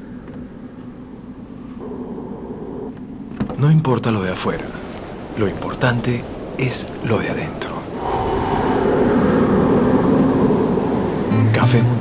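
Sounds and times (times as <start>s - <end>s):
low rushing rumble: 6.2s - 12.0s.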